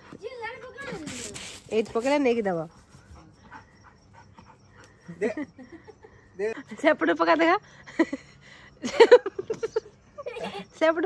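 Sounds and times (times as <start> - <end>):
dog panting faintly: 0.0 - 5.6.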